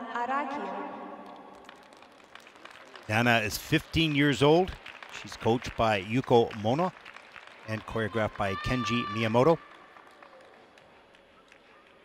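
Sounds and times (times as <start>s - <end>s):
public address echo: 0.0s - 1.7s, 3.1s - 7.0s, 7.6s - 9.9s
faint applause: 1.2s - 12.0s.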